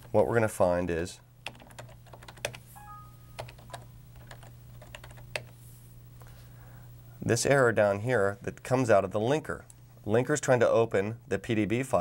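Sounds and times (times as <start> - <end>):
steady low hum: 0.0 - 12.0
keyboard keys tapping: 1.5 - 5.5.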